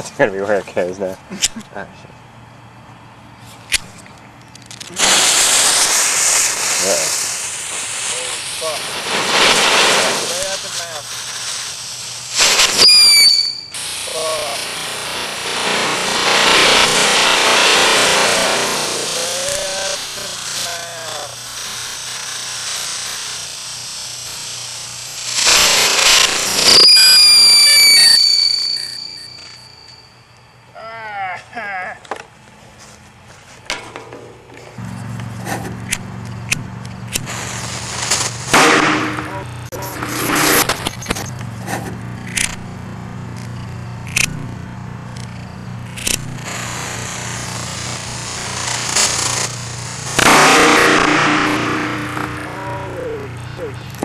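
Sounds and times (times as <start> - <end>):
fireworks crackling and popping: 3.5 - 30.4, 33.1 - 54.0
fireworks hissing spray: 4.6 - 30.0, 34.8 - 54.0
firework whistle: 4.9 - 30.6, 34.8 - 42.6, 45.2 - 54.0.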